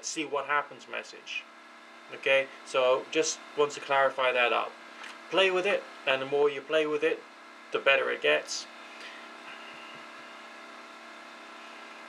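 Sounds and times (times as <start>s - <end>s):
electrical hum with whine: 0.0s - 12.0s.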